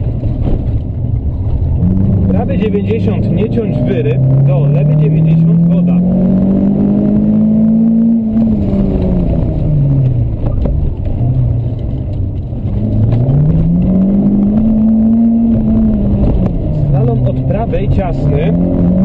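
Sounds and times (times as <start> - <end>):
rally car engine from inside cabin: 0.0 - 19.0.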